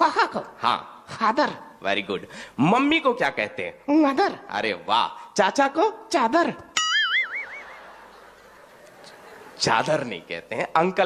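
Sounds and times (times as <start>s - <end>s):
faint background hiss: 0.0s - 11.0s
cartoon boing: 6.8s - 7.7s.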